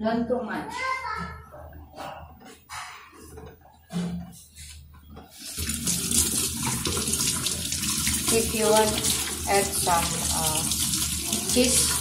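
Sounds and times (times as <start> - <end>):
running tap water: 5.4 - 12.0.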